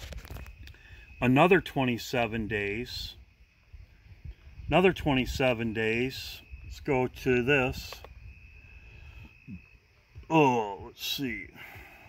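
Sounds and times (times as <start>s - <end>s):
cricket trill: 0.0s - 12.0s.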